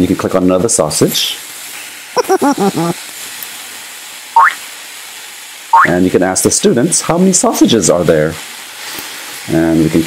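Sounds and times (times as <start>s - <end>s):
frying pan sizzle: 0.0s - 10.0s
rising cartoon sound effect: 2.2s - 3.0s, 4.4s - 4.6s.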